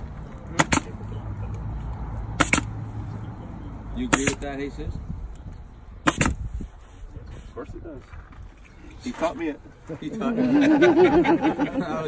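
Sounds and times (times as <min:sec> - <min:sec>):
pneumatic stapler firing: 0:00.6 - 0:00.9, 0:02.4 - 0:02.7, 0:04.1 - 0:04.4, 0:06.0 - 0:06.4.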